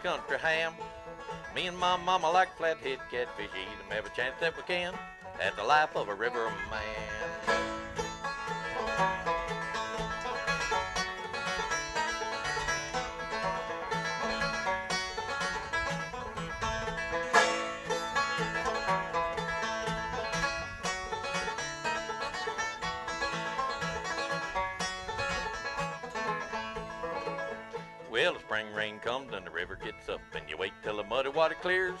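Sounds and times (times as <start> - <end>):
acoustic guitar backing: 0.0 - 32.0
banjo picking fast runs: 0.0 - 32.0.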